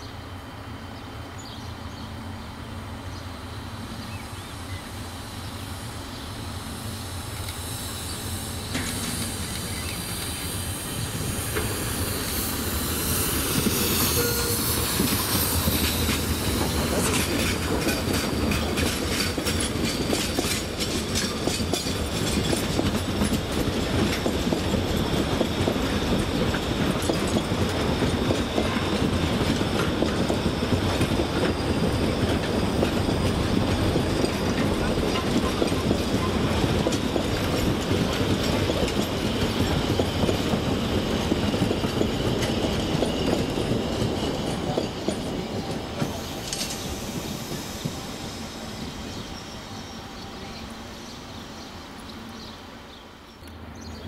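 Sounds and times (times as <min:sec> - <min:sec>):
train wheels clattering over rail joints: 0:07.2 - 0:49.3.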